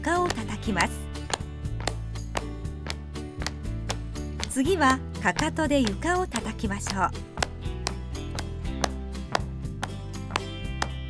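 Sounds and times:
light background music: 0.0s - 11.0s
hand claps in steady beat: 0.2s - 11.0s.

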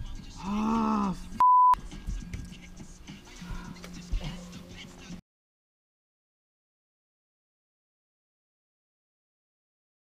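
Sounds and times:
censor bleep: 1.4s - 1.8s.

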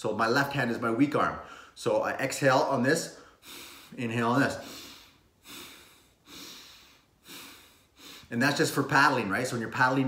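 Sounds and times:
man breathing quickly: 1.4s - 1.8s, 3.2s - 4.0s, 4.6s - 8.3s.

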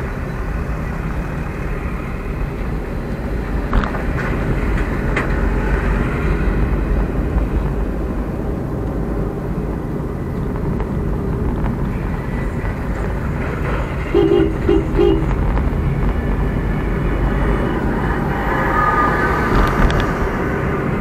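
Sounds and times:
car road and engine rumble: 0.0s - 21.0s
vehicle horn short beeps: 14.1s - 15.3s.

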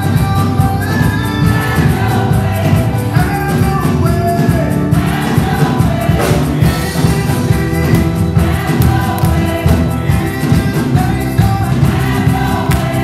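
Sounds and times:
gospel choir singing: 0.0s - 13.0s
low accompaniment: 0.0s - 13.0s.

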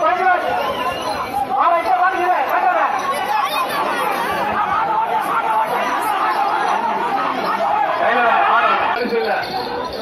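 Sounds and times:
crowd babble: 0.0s - 10.0s.

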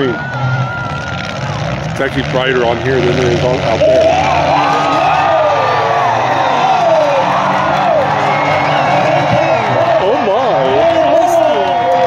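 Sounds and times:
crowd cheering and yelling: 0.0s - 12.0s.

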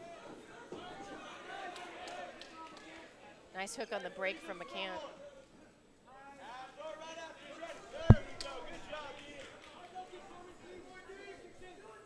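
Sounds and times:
sharp thud: 8.1s - 9.1s.

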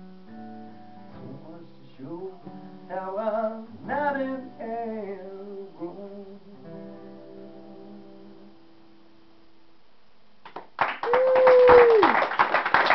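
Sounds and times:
acoustic guitar chord ringing: 0.0s - 9.4s
audience applause: 10.5s - 12.9s
person whooping: 11.0s - 12.4s.

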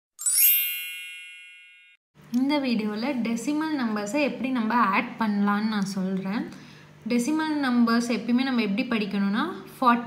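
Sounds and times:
bright chime: 0.2s - 2.0s.

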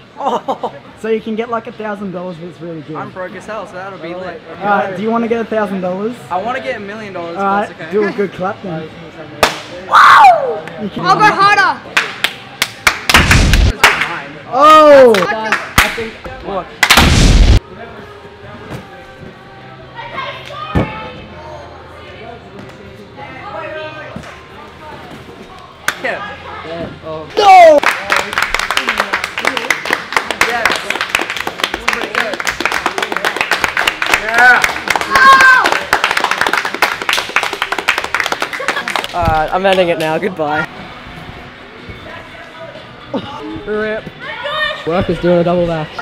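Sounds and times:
loud hand clap: 9.4s - 9.7s, 11.9s - 14.2s, 15.1s - 16.1s, 16.8s - 17.1s, 27.8s - 39.8s
people shouting and cheering: 9.9s - 11.4s, 27.3s - 27.8s, 34.2s - 36.0s
group clapping fast: 11.9s - 14.2s, 15.1s - 16.1s, 27.7s - 40.1s.

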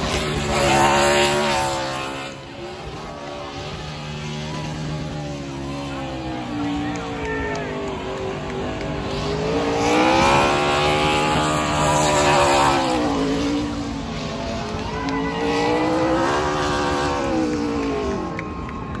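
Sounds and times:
car engine revving hard: 0.0s - 7.0s, 8.0s - 18.3s.

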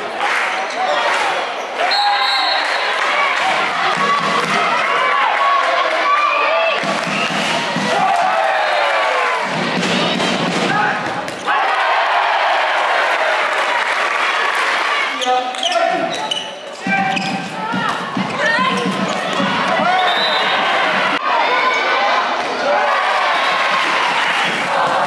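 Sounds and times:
players shouting: 0.1s - 16.2s, 16.8s - 25.0s.

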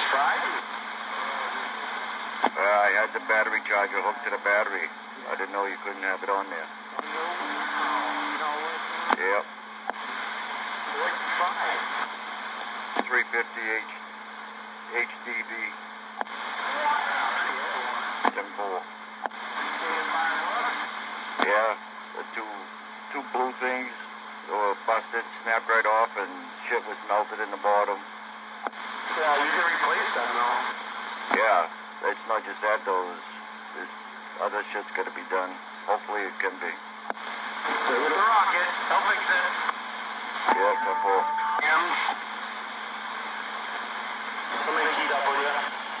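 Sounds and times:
weak garbled radio voice: 0.0s - 9.5s, 14.8s - 28.2s, 40.4s - 42.2s
loud radio static hiss: 0.0s - 46.0s
radio key-up click: 16.2s - 16.4s, 19.2s - 19.8s.

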